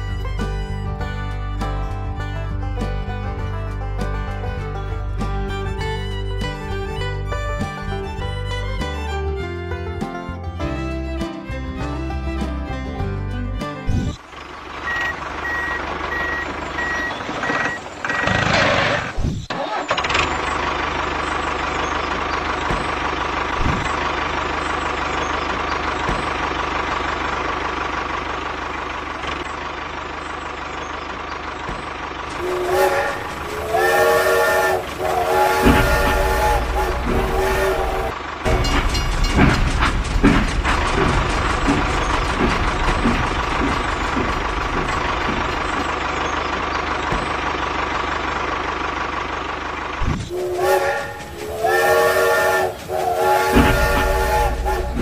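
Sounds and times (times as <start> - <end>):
engine running: 0.0 - 55.0
vehicle running rumble: 0.0 - 55.0
multi-tone horn blasts: 32.4 - 38.7, 50.3 - 55.0.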